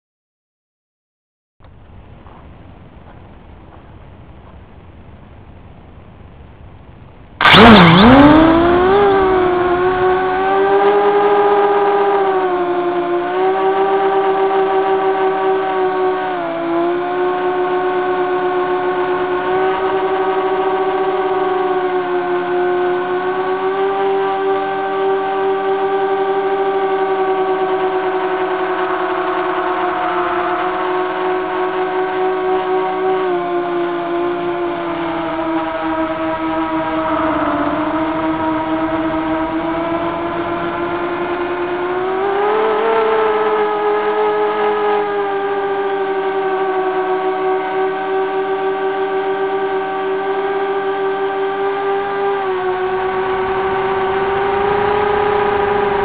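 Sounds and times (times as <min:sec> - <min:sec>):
drone motors buzzing whine: 0:01.6 - 0:56.0.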